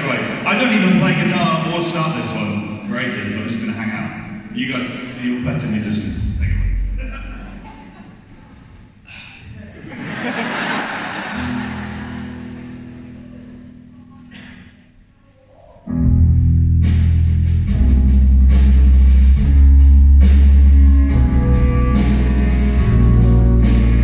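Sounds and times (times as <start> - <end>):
string orchestra holding low notes: 0.0 - 8.8, 10.9 - 14.0, 17.7 - 24.0
crowd noise: 0.0 - 16.2
rock band playing loud: 11.4 - 13.5, 16.0 - 24.0.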